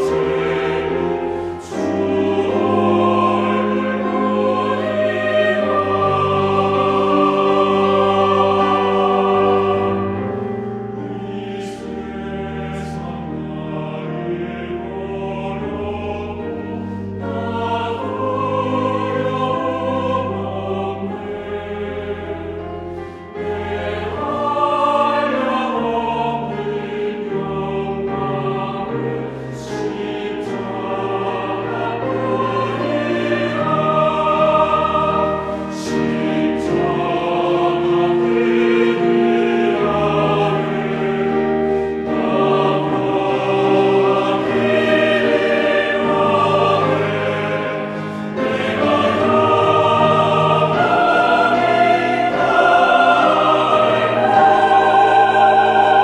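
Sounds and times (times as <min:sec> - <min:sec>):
choir singing a hymn: 0:00.0 - 0:56.0
piano accompaniment: 0:00.0 - 0:56.0.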